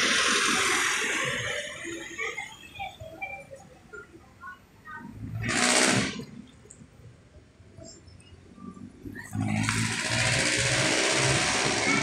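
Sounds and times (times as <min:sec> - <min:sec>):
vehicle passing close by: 0:09.4 - 0:12.0.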